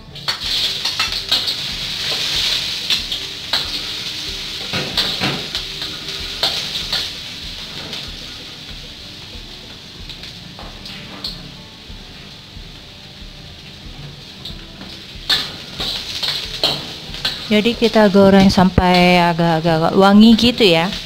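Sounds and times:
ginger sizzling in oil: 0.0s - 21.0s.

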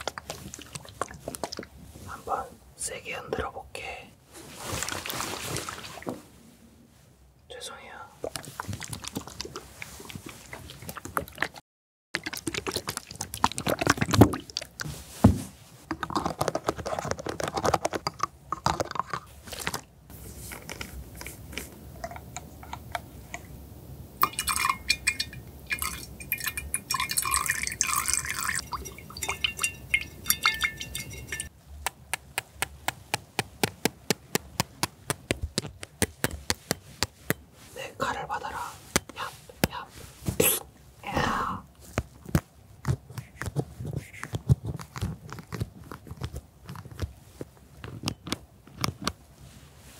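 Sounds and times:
liquid pouring into a glass: 24.2s - 31.5s.

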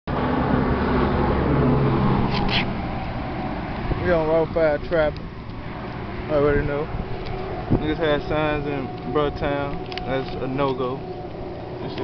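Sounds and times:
vehicle engine drone: 0.1s - 12.0s.

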